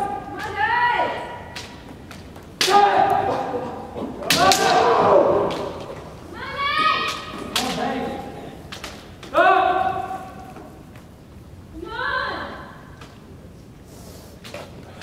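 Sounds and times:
fighters shouting: 2.6 - 5.8
bamboo sword strikes cracking: 4.3 - 4.9.

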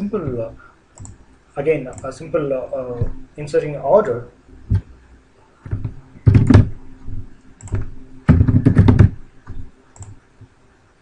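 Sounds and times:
computer keyboard typing: 1.0 - 1.2, 5.7 - 6.7, 7.6 - 10.2.

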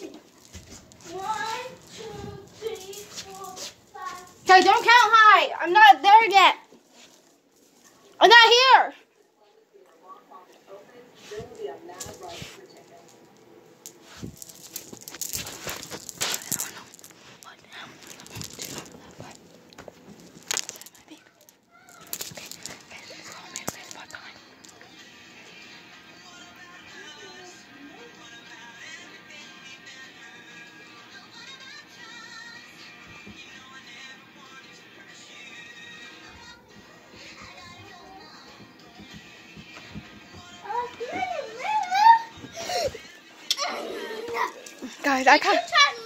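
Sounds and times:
faint music with singing: 0.0 - 46.0
low voices: 36.4 - 45.1.

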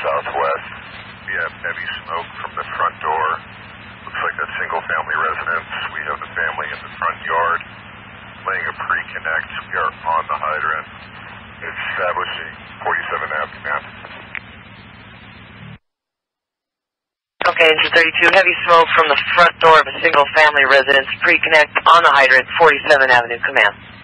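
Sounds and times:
voice over tinny radio: 0.0 - 0.7, 1.3 - 3.4, 4.1 - 7.6, 8.5 - 10.8, 11.6 - 14.3, 17.4 - 23.7
steady low hum: 0.0 - 15.8, 17.4 - 24.0.

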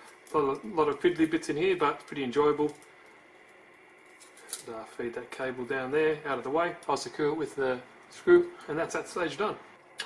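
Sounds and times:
man talking: 0.3 - 2.8, 4.6 - 9.6
small parts clicking and rustling: 2.0 - 4.7.

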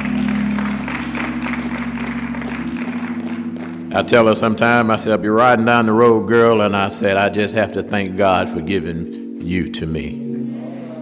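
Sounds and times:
congregation applauding: 0.0 - 5.9
held keyboard chord: 0.0 - 11.0.

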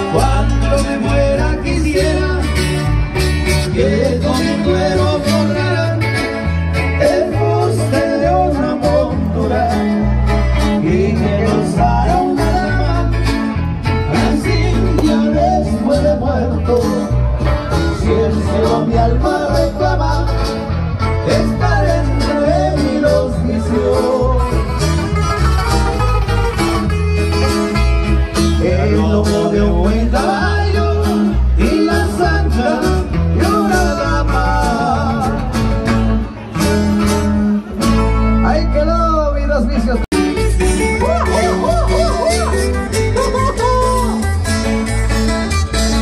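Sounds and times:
live band playing dance music: 0.0 - 46.0.

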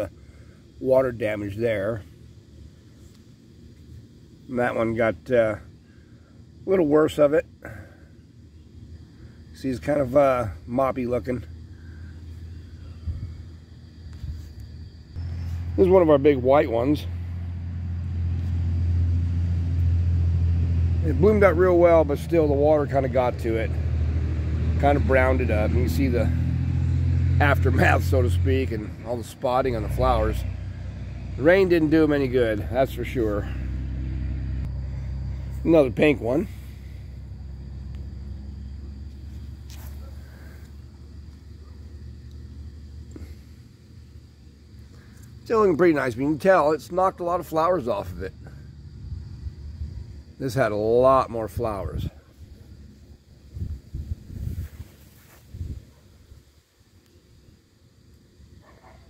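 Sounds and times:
faint hum: 0.0 - 24.1, 24.8 - 59.0
low outdoor rumble: 0.0 - 59.0.

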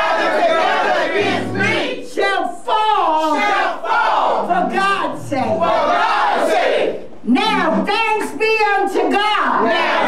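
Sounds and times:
woman shouting: 4.5 - 5.8, 7.3 - 10.0.

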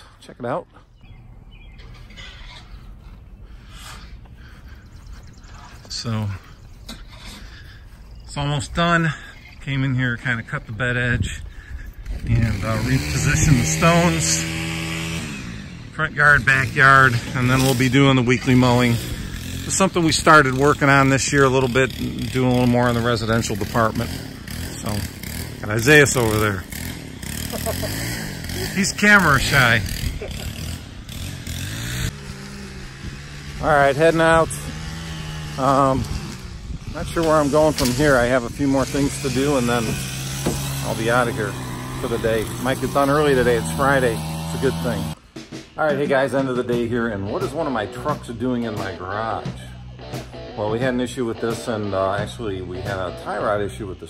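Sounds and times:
engine running steadily: 0.0 - 46.1
bird chirps: 0.7 - 10.2
bird trill: 0.9 - 10.0.

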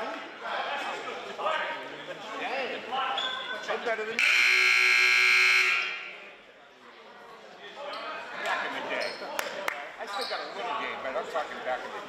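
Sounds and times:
voices in a hall: 0.0 - 12.0
scoreboard buzzer blast: 4.2 - 6.0.

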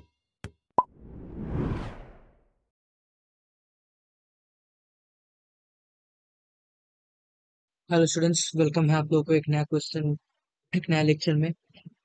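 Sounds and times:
whoosh transition: 0.9 - 2.4.

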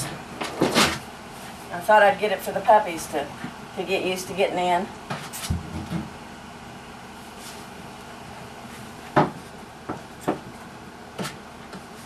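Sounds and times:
room hum: 0.0 - 12.0
short knocks on plastic chair: 9.2 - 10.5.

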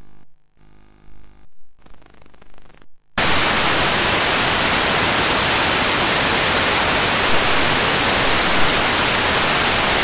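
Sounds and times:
loud static hiss: 1.8 - 10.0.

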